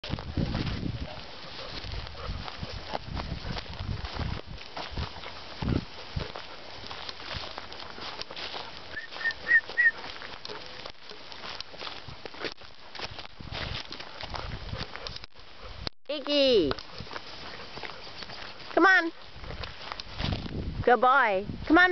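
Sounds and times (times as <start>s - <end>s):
rustles and footfalls on grass: 0.0s - 21.9s.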